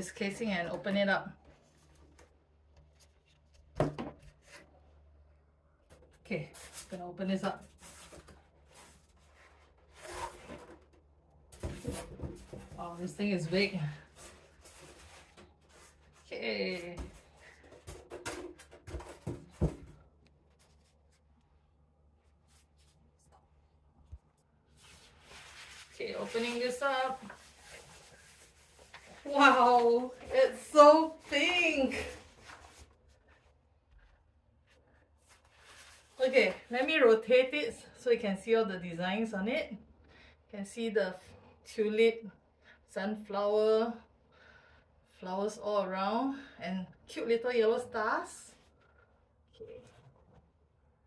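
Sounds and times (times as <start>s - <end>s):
polystyrene foam handling: 24.7s - 32.9s
scraping rubs: 24.7s - 32.9s.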